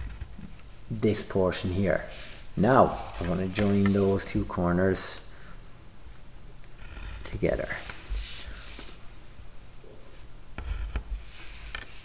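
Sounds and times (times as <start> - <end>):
pencil scratching on paper: 6.8 - 9.0, 10.1 - 12.0.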